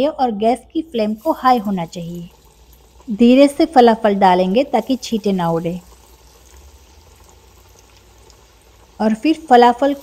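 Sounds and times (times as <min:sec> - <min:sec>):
oil sizzling in deep fryer: 0:00.0 - 0:10.0.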